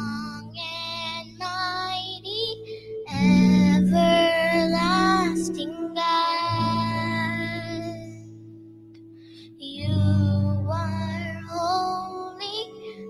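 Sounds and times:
girl singing: 0.0s - 8.4s, 9.4s - 13.0s.

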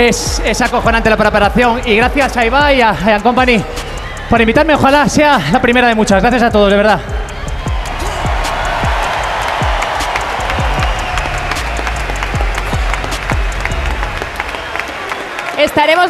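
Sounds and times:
deep bass beats: 0.0s - 14.9s
music over sound system: 0.0s - 15.1s
crowd applauding and cheering: 0.0s - 16.0s.

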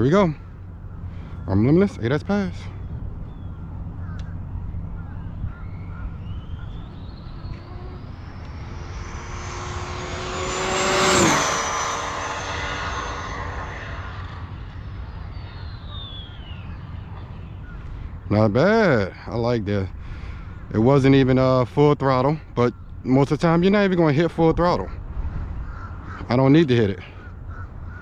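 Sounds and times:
rc car drivetrain whine passing: 4.9s - 17.8s.

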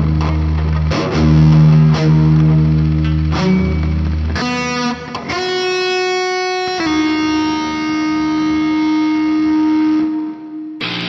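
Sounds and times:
electric guitar notes: 0.0s - 11.0s.

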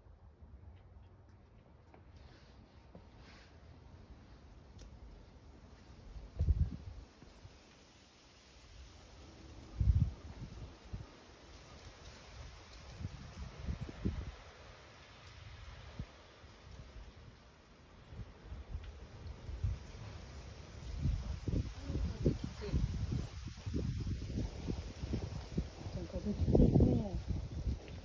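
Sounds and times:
wind buffeting microphone: 6.0s - 7.2s, 9.6s - 11.2s, 12.3s - 14.5s, 18.0s - 28.0s.

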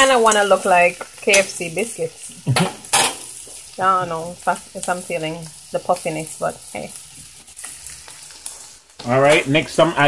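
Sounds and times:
dumplings sizzling in oil: 0.0s - 10.0s.

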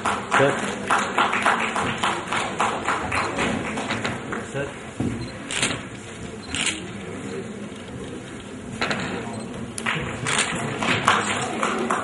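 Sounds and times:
audience applauding: 0.0s - 4.4s, 9.8s - 12.0s.

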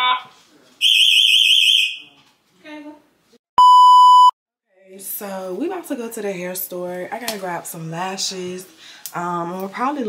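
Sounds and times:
steady loud beep: 3.6s - 4.3s.

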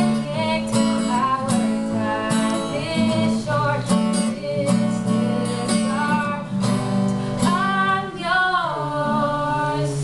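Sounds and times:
acoustic guitar: 0.0s - 10.0s
girls singing: 0.0s - 10.0s.

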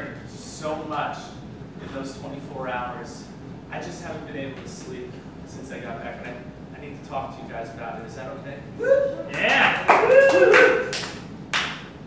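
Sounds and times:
handclaps: 9.3s - 12.0s.

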